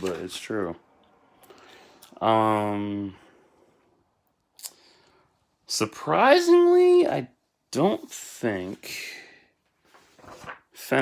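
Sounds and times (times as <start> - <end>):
book handling sound: 9.8 - 11.0.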